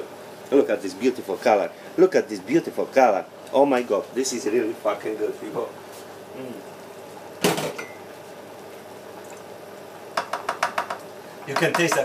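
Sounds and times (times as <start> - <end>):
spoon knocking on glass jar: 10.2 - 12.0.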